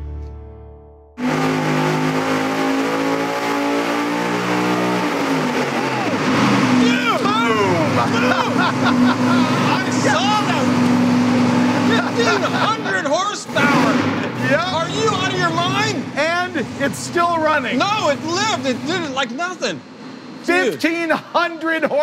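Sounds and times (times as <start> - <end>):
engine running loud: 1.2 - 20.4
men shouting: 5.5 - 19.3.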